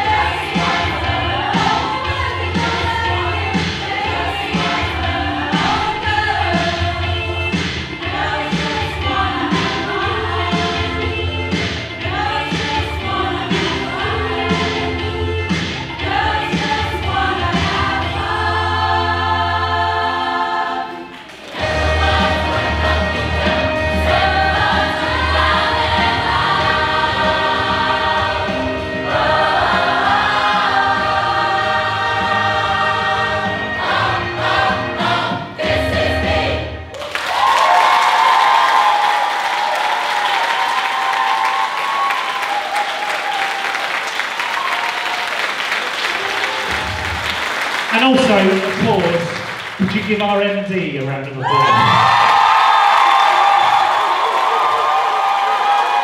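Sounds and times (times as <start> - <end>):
choir singing in harmony: 0.0 - 37.0
audience applause and cheering: 21.0 - 32.9, 36.9 - 50.2, 51.3 - 56.0.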